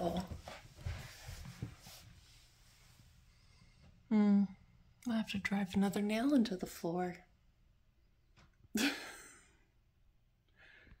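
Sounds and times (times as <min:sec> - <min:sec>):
faint breath: 0:10.5 - 0:11.0.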